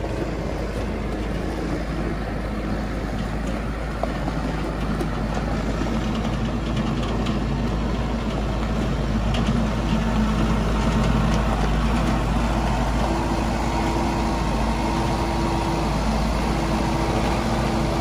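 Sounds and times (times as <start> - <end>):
tires on gravel: 0.0 - 18.0
tractor diesel engine running: 0.0 - 18.0.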